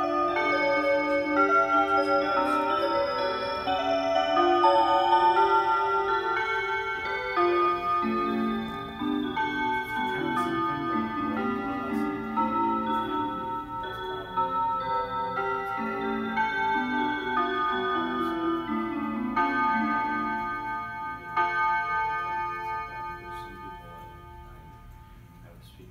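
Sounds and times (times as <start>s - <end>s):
clock chime melody: 0.0s - 25.4s.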